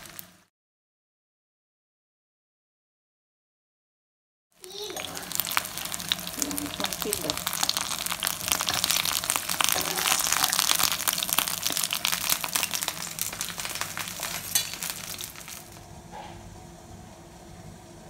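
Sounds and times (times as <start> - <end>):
dumplings sizzling in oil: 0.0 - 0.5, 4.6 - 15.9.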